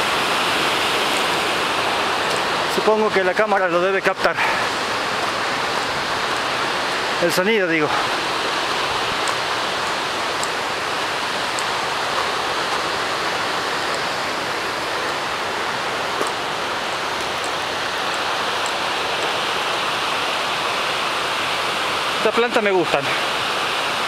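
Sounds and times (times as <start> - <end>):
river rushing over rocks: 0.0 - 24.0.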